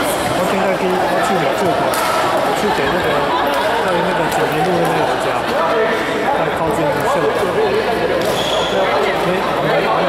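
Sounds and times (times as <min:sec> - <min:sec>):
conversation: 0:00.4 - 0:10.0.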